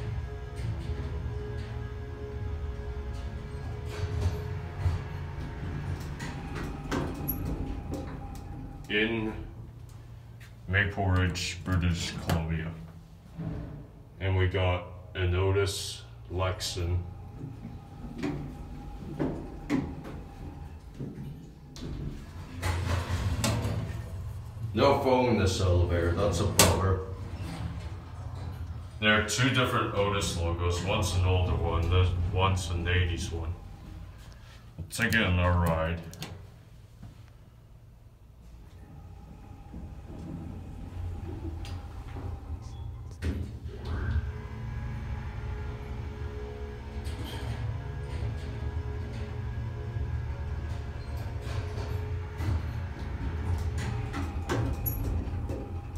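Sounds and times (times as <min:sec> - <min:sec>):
elevator doors clunking shut: 0:00.0 - 0:10.2, 0:15.8 - 0:34.3, 0:38.7 - 0:55.9
low steady hum: 0:00.0 - 0:55.9
metal door clattering open: 0:21.9 - 0:24.4.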